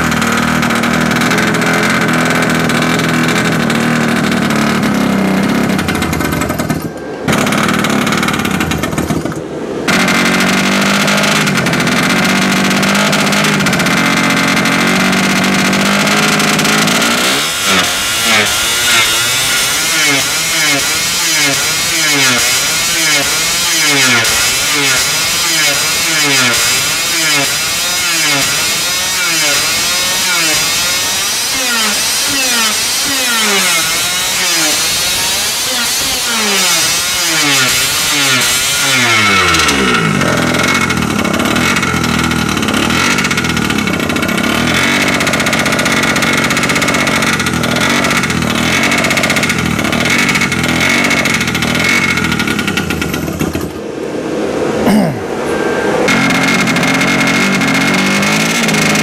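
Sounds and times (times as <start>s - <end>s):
moped engine spinning over and running: 0.0s - 59.0s.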